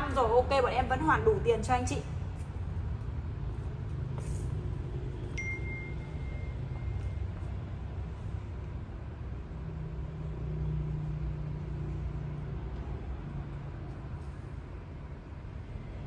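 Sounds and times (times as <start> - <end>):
short high beep: 5.4 - 7.2.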